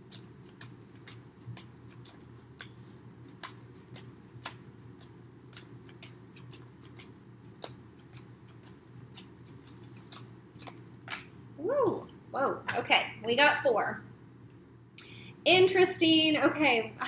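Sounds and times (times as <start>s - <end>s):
cards being shuffled: 0.0s - 11.3s
low steady hum: 0.0s - 17.0s.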